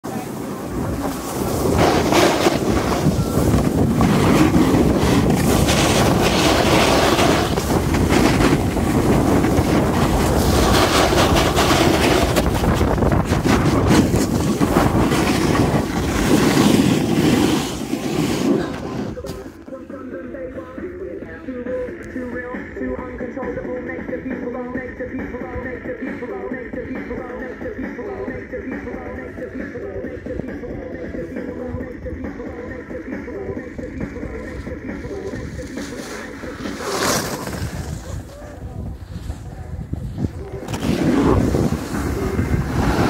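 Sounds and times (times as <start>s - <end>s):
snowboard scraping over snow: 0.1s - 19.6s, 33.8s - 43.0s
wind buffeting microphone: 0.4s - 17.6s, 37.3s - 43.0s.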